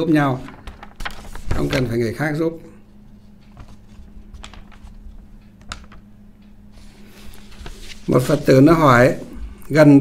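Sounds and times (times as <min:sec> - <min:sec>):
low steady hum: 0:00.0 - 0:10.0
paper crackling: 0:00.2 - 0:02.1, 0:03.5 - 0:06.0, 0:06.8 - 0:09.2.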